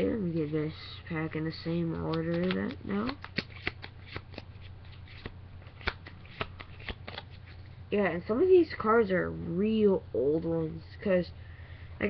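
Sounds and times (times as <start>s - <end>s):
low steady hum: 0.0s - 12.0s
cards snapping and sliding: 2.1s - 7.6s.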